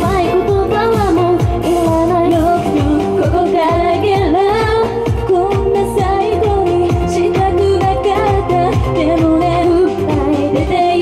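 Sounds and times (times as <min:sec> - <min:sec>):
pop song over loudspeaker: 0:00.0 - 0:11.0.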